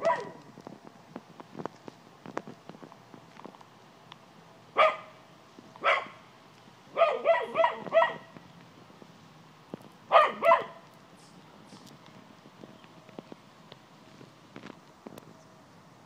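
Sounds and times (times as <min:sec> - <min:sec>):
dog barking: 0:00.0 - 0:00.4, 0:04.8 - 0:05.2, 0:05.8 - 0:06.2, 0:06.9 - 0:08.3, 0:10.1 - 0:10.8.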